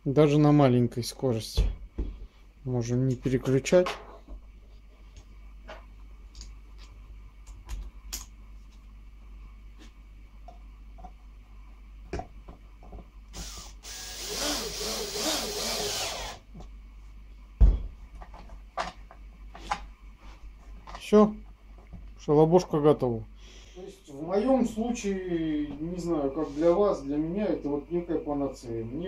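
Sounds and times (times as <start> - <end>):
cordless drill running: 13.3 - 16.4.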